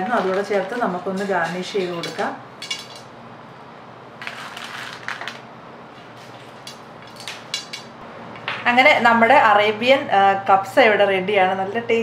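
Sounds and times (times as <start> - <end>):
food rustling on plate: 4.2 - 7.9.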